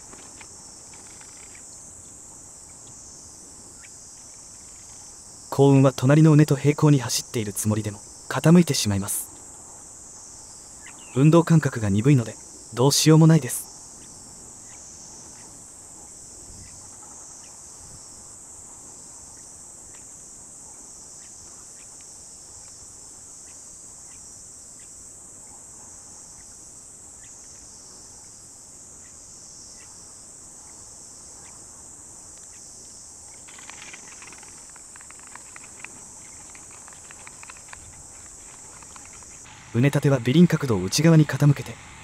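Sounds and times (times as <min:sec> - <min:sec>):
insects chirring: 0:00.0 - 0:42.0
footsteps on loose soil: 0:33.4 - 0:39.5.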